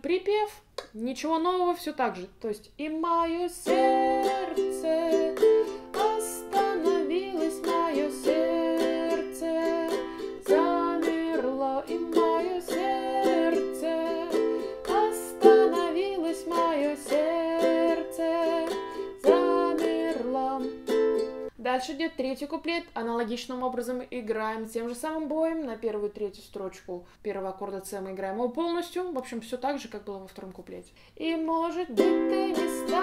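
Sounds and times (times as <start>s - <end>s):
woman singing: 2.8s - 22.8s, 31.2s - 33.0s
ukulele strumming: 3.3s - 21.5s, 31.8s - 33.0s.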